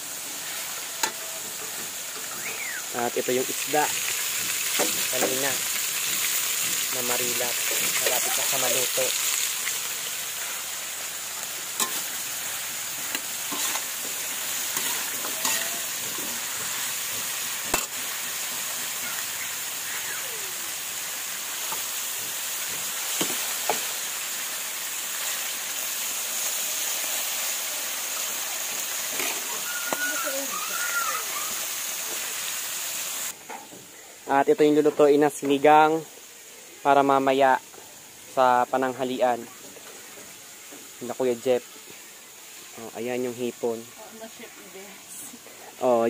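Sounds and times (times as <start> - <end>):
oil sizzling in a pan: 0.0 - 46.0.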